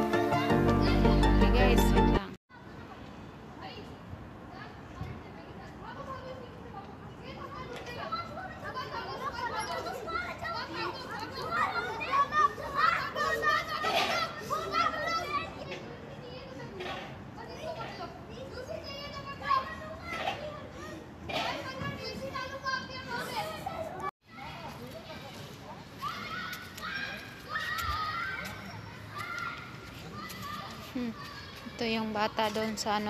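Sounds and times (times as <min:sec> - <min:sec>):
children shouting while playing: 0:07.4 - 0:15.8, 0:26.0 - 0:31.8.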